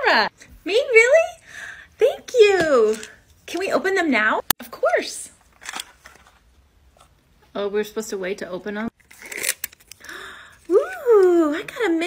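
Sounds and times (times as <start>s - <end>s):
plastic wrapper crinkling and tearing: 9.0s - 11.2s.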